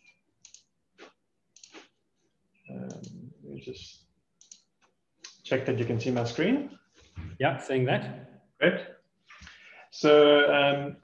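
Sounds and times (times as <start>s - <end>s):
computer mouse clicks: 0.4s - 0.7s, 1.5s - 1.9s, 2.8s - 3.2s, 4.4s - 5.4s.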